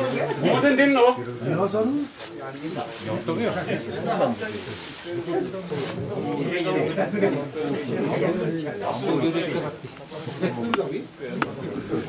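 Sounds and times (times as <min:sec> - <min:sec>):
overlapping conversational voices: 0:00.0 - 0:12.0.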